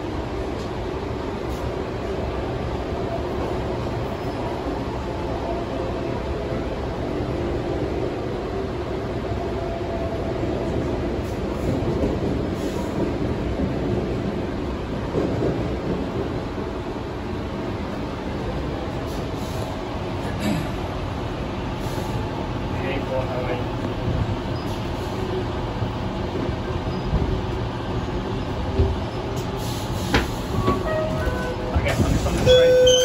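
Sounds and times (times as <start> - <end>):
train wheels rumbling on track: 0.0 - 33.0
train rattle: 10.1 - 33.0.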